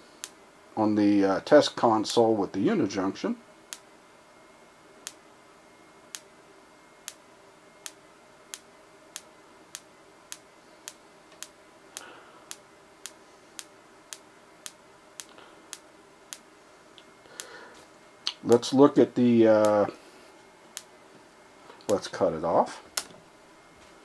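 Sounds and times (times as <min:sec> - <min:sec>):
flash tube ticking: 0:07.0 - 0:07.2, 0:07.8 - 0:17.6, 0:19.6 - 0:19.9.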